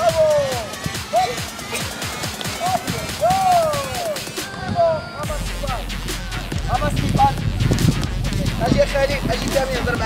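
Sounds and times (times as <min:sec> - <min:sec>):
children chattering and calling out: 0:00.0 - 0:06.8
steady low rumble: 0:05.4 - 0:10.0.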